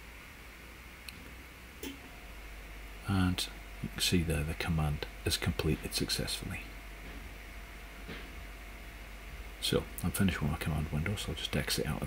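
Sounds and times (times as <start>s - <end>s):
background hiss: 0.0s - 12.0s
faint hum: 0.0s - 12.0s.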